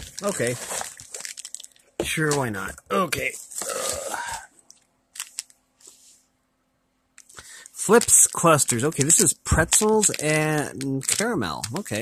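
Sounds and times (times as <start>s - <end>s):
plastic wrapper rustling: 0.0s - 2.6s, 3.4s - 5.6s, 7.5s - 12.0s.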